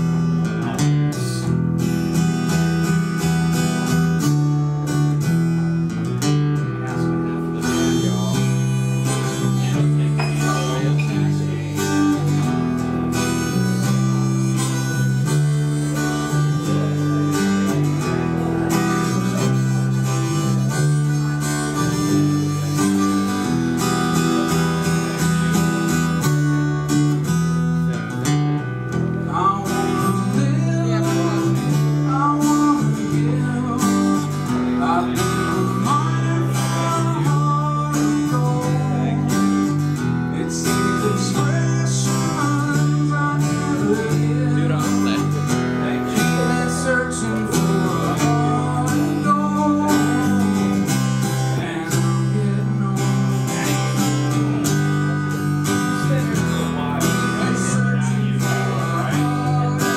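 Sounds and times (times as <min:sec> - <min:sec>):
acoustic guitar chords: 0:00.0 - 0:59.9.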